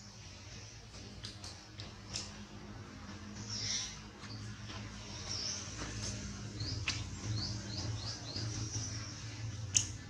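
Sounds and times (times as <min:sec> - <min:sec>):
low steady hum: 0:00.0 - 0:10.0
small bird chirping: 0:03.4 - 0:10.0.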